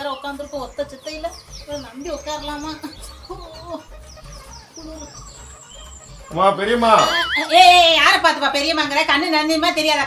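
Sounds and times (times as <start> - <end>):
high bird chirps: 0.0 - 8.2
chickens clucking: 0.0 - 9.9.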